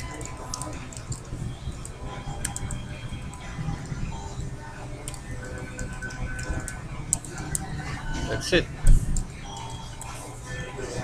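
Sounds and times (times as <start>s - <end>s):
faint background music: 0.0s - 11.0s
low steady hum: 0.0s - 11.0s
keyboard keys clicking: 2.4s - 3.4s, 5.0s - 7.7s.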